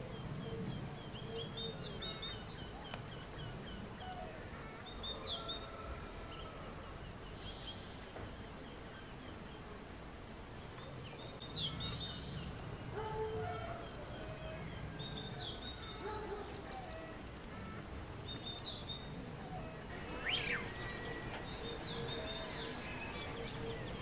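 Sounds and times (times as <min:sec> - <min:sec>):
birds whistling low notes: 0:00.0 - 0:24.0
outdoor background noise: 0:00.0 - 0:24.0.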